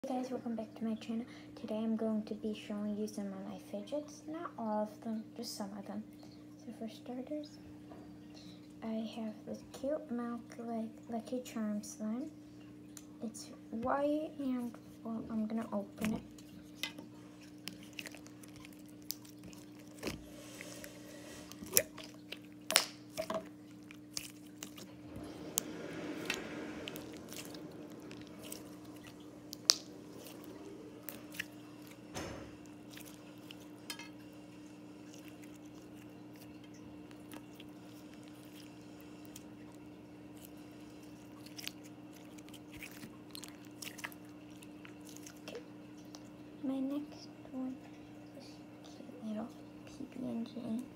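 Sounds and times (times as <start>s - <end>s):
slime squishing: 15.3s - 46.4s
slime clicking and popping: 22.6s - 23.3s.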